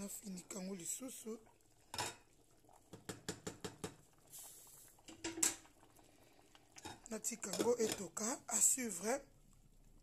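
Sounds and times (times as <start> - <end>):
wooden spoon knocking in pot: 2.9 - 4.0.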